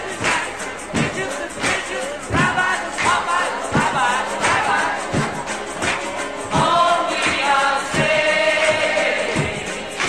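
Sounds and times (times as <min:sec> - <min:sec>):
choir singing: 0:00.0 - 0:10.0
steady drum beat: 0:00.0 - 0:10.0.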